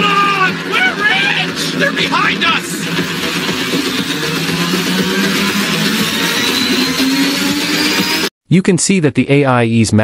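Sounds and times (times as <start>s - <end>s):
car engine running: 0.0s - 8.3s
road noise: 0.0s - 8.3s.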